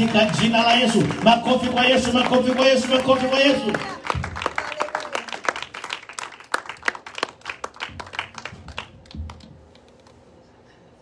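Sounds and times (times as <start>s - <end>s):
people applauding: 0.0s - 10.1s.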